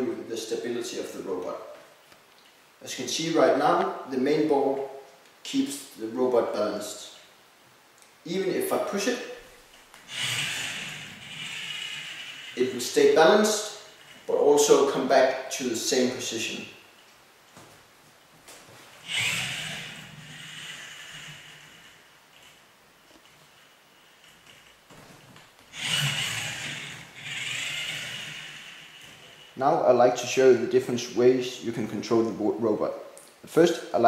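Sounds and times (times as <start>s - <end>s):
robot motors whirring: 10.0s - 13.2s, 19.0s - 22.6s, 25.7s - 29.6s.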